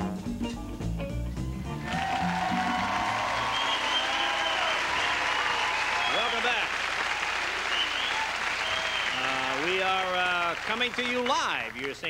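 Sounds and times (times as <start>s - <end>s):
audience applauding and cheering: 1.6s - 12.0s
whoops and shouts: 1.8s - 9.2s.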